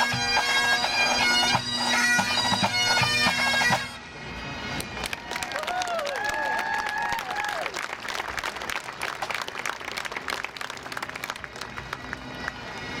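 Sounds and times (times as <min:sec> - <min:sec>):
bagpipes playing: 0:00.0 - 0:05.0
crowd applauding: 0:05.0 - 0:13.0.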